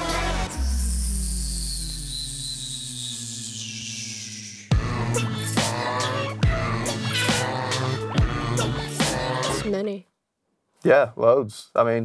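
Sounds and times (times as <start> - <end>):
high synth tone sliding down: 0.0 - 7.4.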